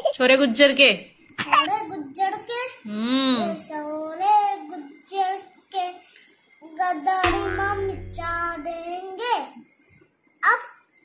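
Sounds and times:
low buzz: 7.2 - 8.9.

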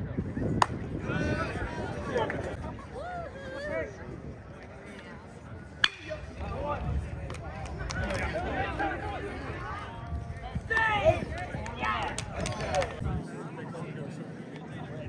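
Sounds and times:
metal bat cracking: 5.8 - 6.3.

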